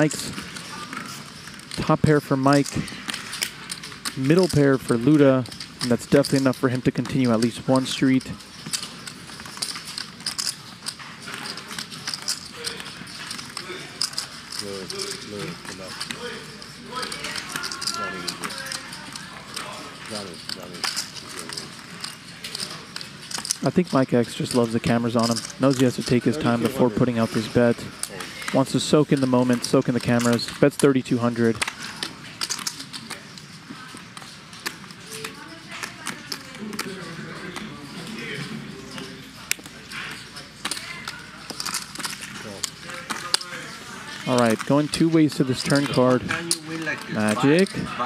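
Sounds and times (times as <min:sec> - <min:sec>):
poker chips clicking: 0:00.0 - 0:16.3, 0:16.9 - 0:37.8, 0:38.9 - 0:47.8
low murmur of voices: 0:00.0 - 0:48.0
quiet table talk: 0:00.0 - 0:48.0.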